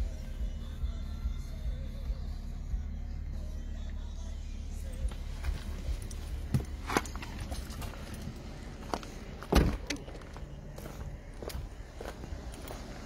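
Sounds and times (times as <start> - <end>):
footsteps: 5.1 - 13.0
car door shutting with heavy thud: 9.4 - 10.2.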